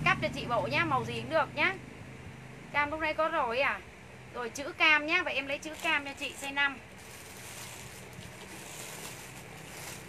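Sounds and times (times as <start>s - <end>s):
plastic bags rustling: 5.6s - 10.0s.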